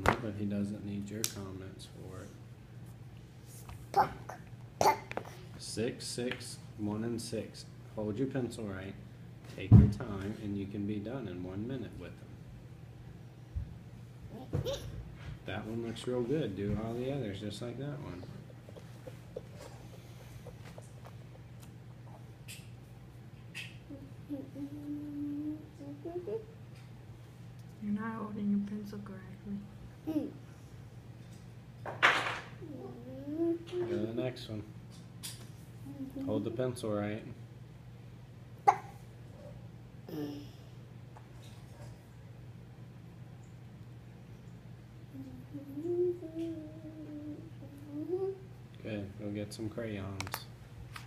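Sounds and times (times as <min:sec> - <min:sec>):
person humming: 0:23.9 - 0:26.5, 0:35.8 - 0:36.4, 0:45.1 - 0:48.5.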